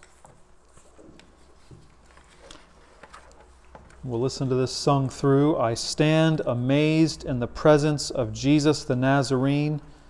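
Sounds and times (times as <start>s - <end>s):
faint soft clicks and rustles: 0.0s - 4.1s.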